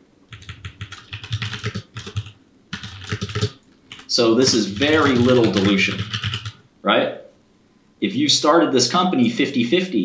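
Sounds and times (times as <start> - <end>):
typing on computer keyboard: 0.3 - 6.6.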